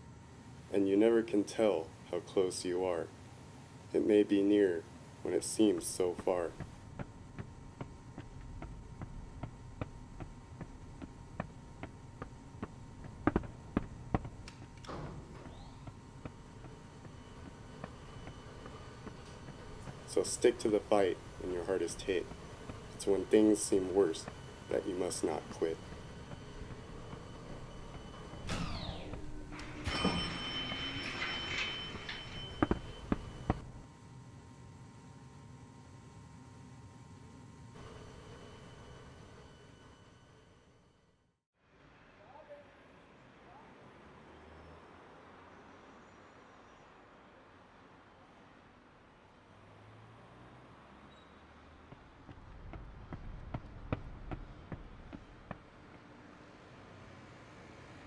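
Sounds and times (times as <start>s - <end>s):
faint low hum: 0.0s - 41.1s
footsteps on stone tile floor: 6.6s - 20.0s, 31.1s - 33.6s.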